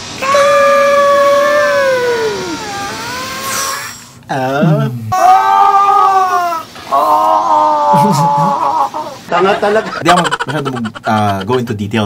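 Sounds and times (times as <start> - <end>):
man's high-pitched yell: 0.2 - 3.6, 5.1 - 9.0.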